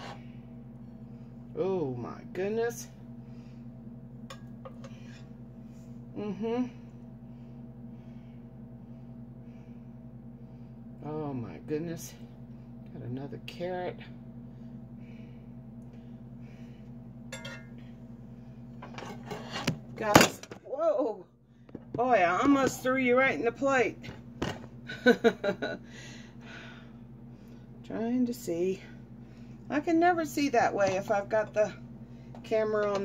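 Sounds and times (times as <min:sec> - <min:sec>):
metal spoon scraping a pot: 0:00.0 - 0:00.2, 0:18.9 - 0:19.7
steady low hum: 0:00.0 - 0:33.0
metal spoon clinking on pot: 0:17.3 - 0:17.7.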